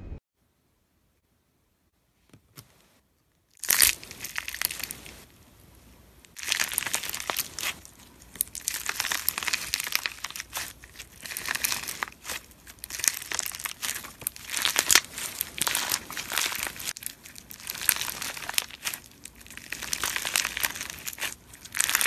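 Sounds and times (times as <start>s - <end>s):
slime crunching and crackling: 3.5s - 5.3s, 6.3s - 22.0s.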